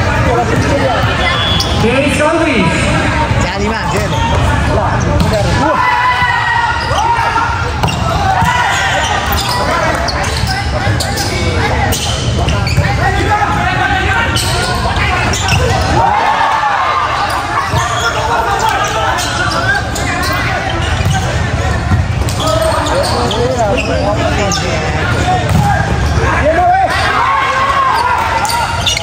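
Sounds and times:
voices of players and spectators: 0:00.0 - 0:29.0.

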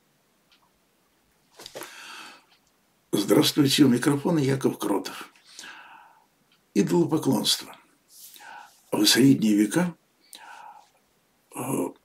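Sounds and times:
man breathing in softly: 0:01.8 - 0:02.6, 0:05.3 - 0:06.3, 0:08.2 - 0:08.9, 0:10.2 - 0:11.0
man saying uh: 0:11.5 - 0:12.0.

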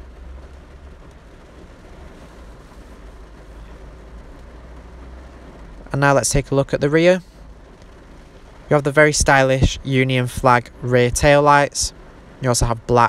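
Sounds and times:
faint hiss: 0:00.0 - 0:13.0
steady low rumble: 0:00.0 - 0:13.0.

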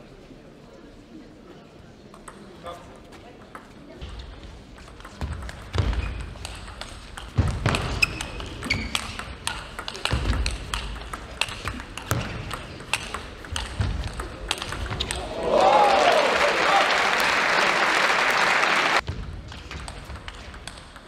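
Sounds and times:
table tennis ball clicking: 0:08.1 - 0:15.3.

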